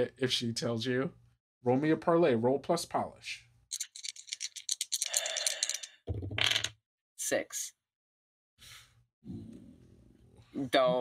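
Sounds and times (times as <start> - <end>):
dice clattering: 3.7 - 6.7.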